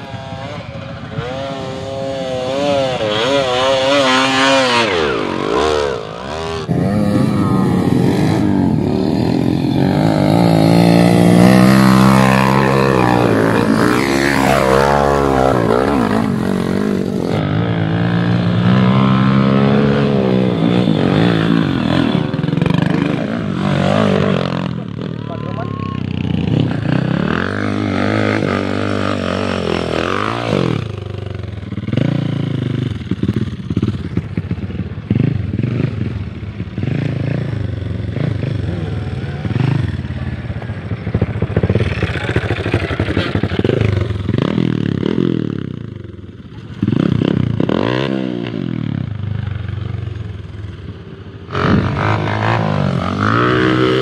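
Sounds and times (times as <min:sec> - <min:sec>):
motorcycles revving: 0:00.0 - 0:54.0.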